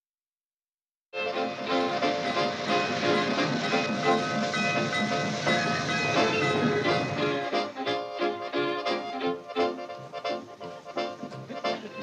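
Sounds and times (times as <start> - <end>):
background music: 1.2 - 12.0
steam locomotive running: 1.2 - 12.0.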